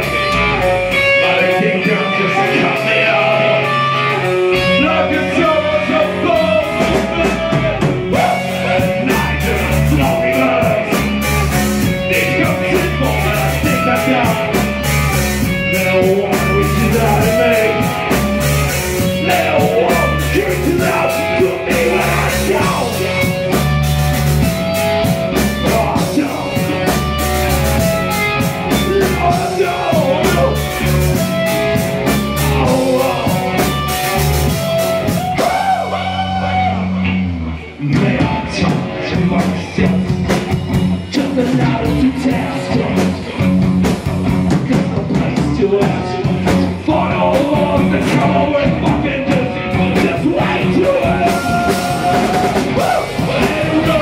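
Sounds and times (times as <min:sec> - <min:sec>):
man singing: 0:00.0 - 0:23.8, 0:25.0 - 0:43.6, 0:44.5 - 0:54.0
drum kit: 0:00.0 - 0:37.2, 0:37.8 - 0:54.0
distorted electric guitars: 0:00.0 - 0:54.0
driving bass line: 0:00.0 - 0:54.0.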